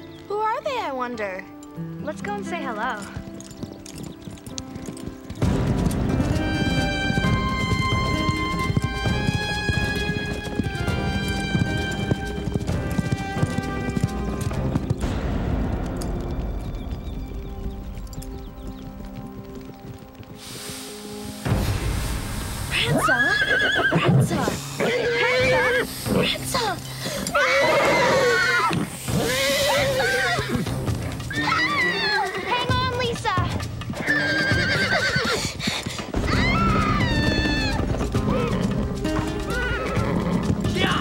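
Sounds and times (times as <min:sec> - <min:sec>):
dramatic film music: 0:00.0 - 0:41.0
galloping hoofbeats: 0:00.0 - 0:41.0
horses whinnying shrilly: 0:05.2 - 0:14.9, 0:22.7 - 0:32.6, 0:33.9 - 0:41.0.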